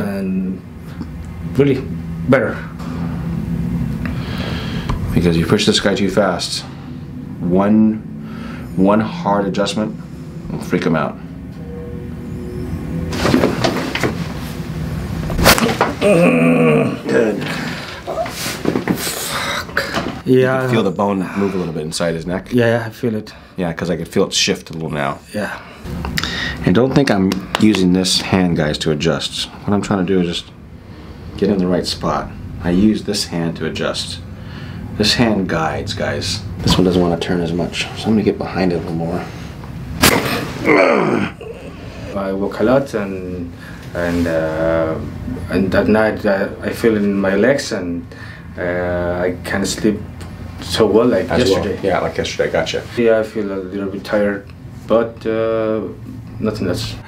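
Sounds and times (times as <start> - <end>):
person groaning in pain: 16.0 - 18.3, 40.2 - 42.0.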